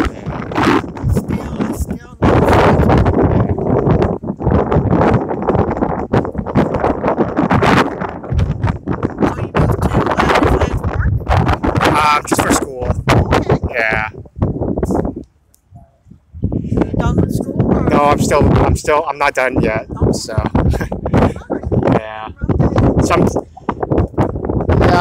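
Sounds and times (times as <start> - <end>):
voices talking: 0.0 - 3.9, 9.2 - 14.2, 16.6 - 23.7
wind buffeting microphone: 0.0 - 25.0.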